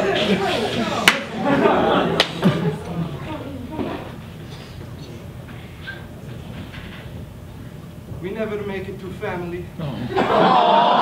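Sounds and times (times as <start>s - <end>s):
room noise rumble in a hall: 0.0s - 11.0s.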